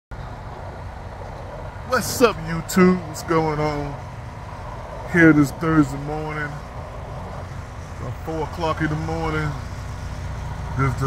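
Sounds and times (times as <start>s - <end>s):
truck engine idling: 0.1s - 11.0s
man's voice: 1.9s - 4.0s, 5.1s - 6.6s, 8.0s - 9.7s.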